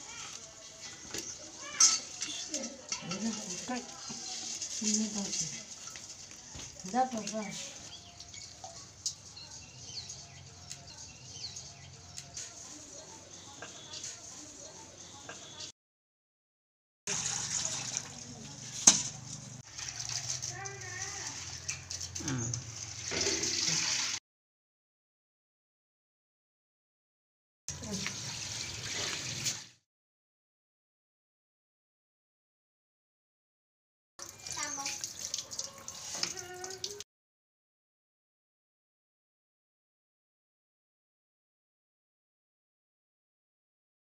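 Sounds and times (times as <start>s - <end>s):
water sloshing in steel bowl: 17.1s - 24.2s.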